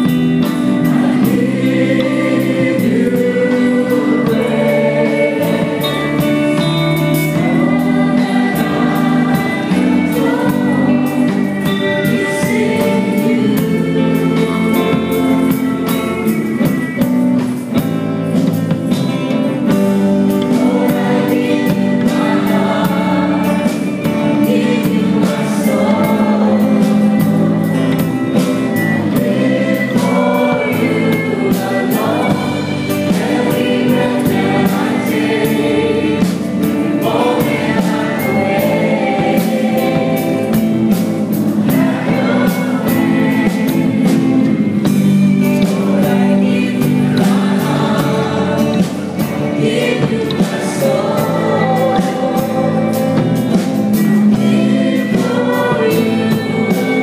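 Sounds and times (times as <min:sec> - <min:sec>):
drums keeping a steady beat: 0:00.0 - 0:57.0
electric guitar: 0:00.0 - 0:57.0
group of singers: 0:00.0 - 0:57.0
strummed acoustic guitars: 0:00.0 - 0:57.0.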